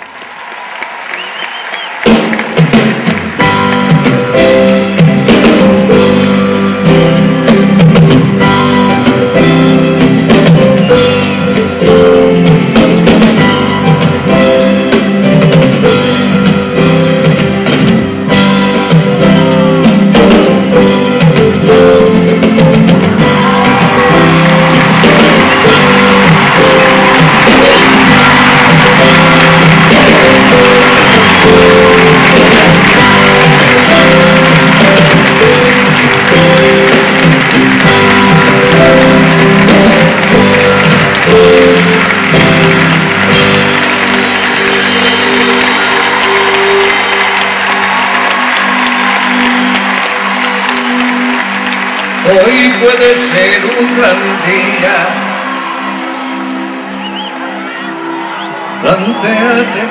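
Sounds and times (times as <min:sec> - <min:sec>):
audience applauding and cheering: 0:00.0 - 0:59.9
live band playing: 0:01.4 - 0:59.9.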